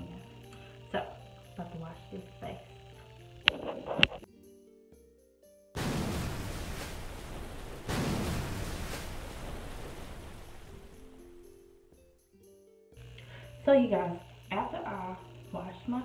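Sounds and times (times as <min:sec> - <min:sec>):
soft background music: 0:00.0 - 0:05.8, 0:09.0 - 0:16.0
water splashing at a sink: 0:05.8 - 0:11.3.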